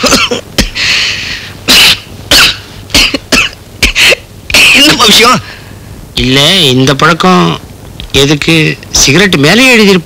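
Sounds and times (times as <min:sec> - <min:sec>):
man coughing: 0:00.0 - 0:00.9, 0:01.6 - 0:04.3.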